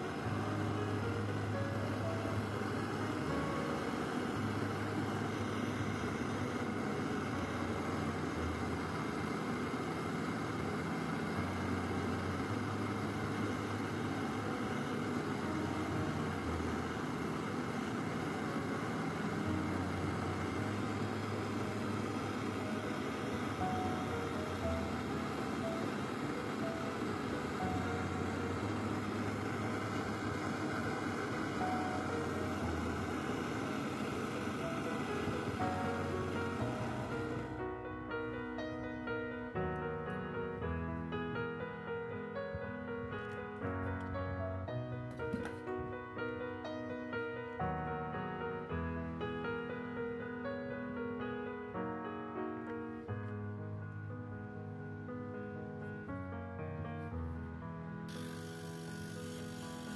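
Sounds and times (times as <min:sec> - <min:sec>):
gas torch flame hissing: 0:00.0 - 0:37.7, 0:58.1 - 0:59.9.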